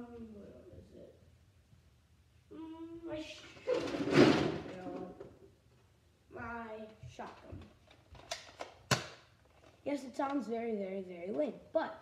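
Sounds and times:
boy's wordless voice: 0.0s - 1.3s, 2.5s - 5.4s, 6.3s - 7.8s, 9.8s - 12.0s.

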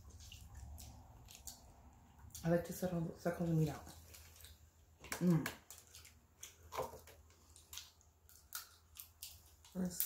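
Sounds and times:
wet eating sounds: 0.0s - 10.0s.

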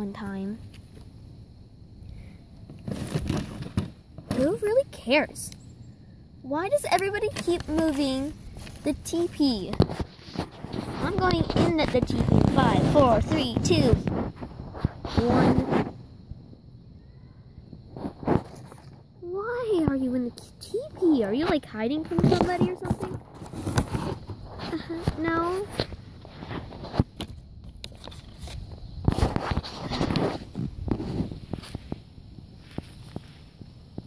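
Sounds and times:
child's voice: 0.0s - 0.6s, 4.3s - 5.6s, 6.4s - 9.9s, 10.9s - 14.1s, 15.1s - 15.8s, 19.2s - 23.2s, 24.6s - 25.8s
plastic toys rustling in grass: 6.7s - 16.0s, 20.8s - 33.8s.

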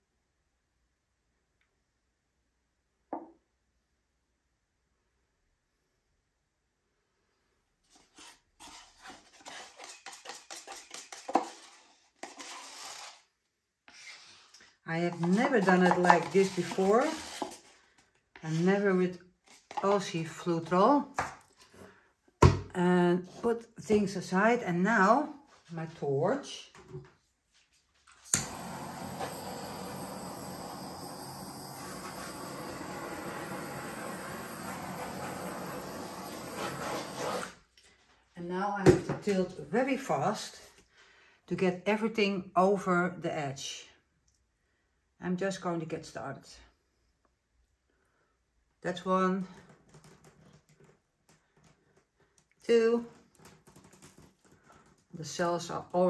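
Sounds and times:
tool scraping paint cup: 7.9s - 13.2s, 15.1s - 17.7s, 28.8s - 37.6s
butane torch clicking: 28.2s - 36.6s
hissing scrape: 28.4s - 37.6s.

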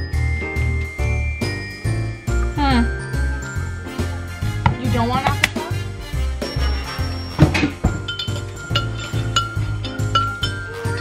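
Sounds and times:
spoon clinking in ceramic mug: 7.3s - 11.0s.

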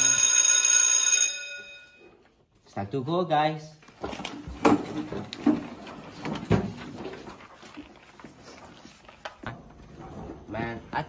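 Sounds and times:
school bell ringing: 0.0s - 2.2s.

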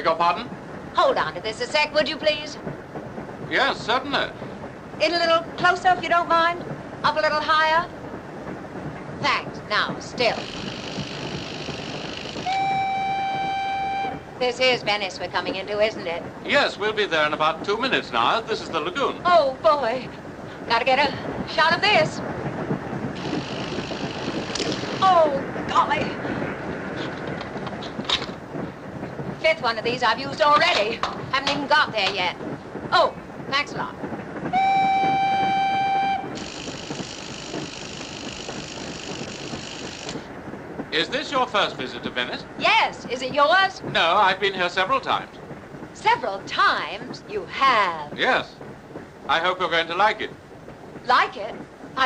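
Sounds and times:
steady hiss: 0.0s - 52.0s
train rumble: 0.0s - 52.0s
train whistle long note: 12.3s - 14.3s, 34.5s - 40.1s.

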